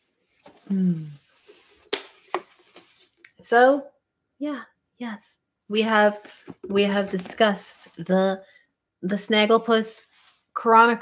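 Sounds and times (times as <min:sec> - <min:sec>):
person humming: 0:00.7 - 0:01.2.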